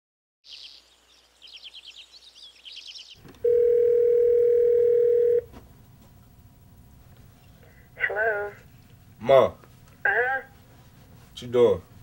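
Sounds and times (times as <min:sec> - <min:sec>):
birds chirping: 0:00.4 - 0:03.4
telephone ringback tone: 0:03.4 - 0:05.5.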